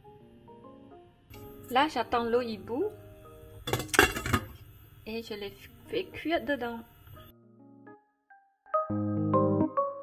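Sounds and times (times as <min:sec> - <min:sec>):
soft background music: 0:00.0 - 0:04.4, 0:05.0 - 0:10.0
glass lid clinking on steel pot: 0:03.7 - 0:04.6.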